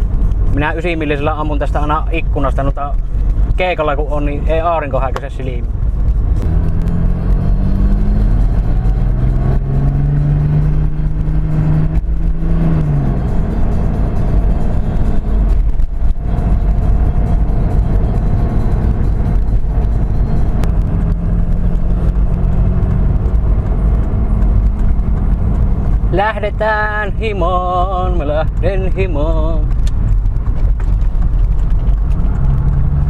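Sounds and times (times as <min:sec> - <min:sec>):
road noise: 0:00.0 - 0:33.0
diesel engine revving: 0:05.8 - 0:33.0.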